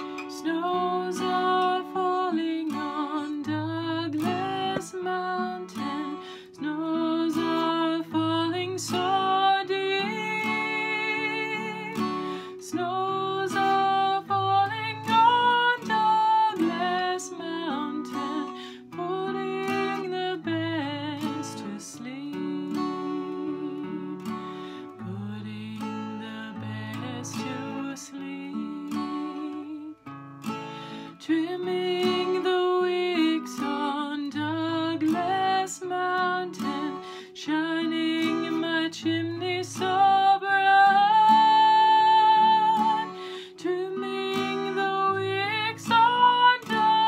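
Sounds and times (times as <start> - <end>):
woman singing: 0.0 - 30.2, 30.9 - 47.0
acoustic guitar strummed and picked: 0.0 - 47.0.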